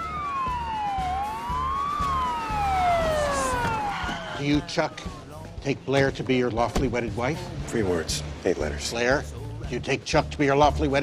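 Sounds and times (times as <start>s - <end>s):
police sirens wailing: 0.0s - 5.4s.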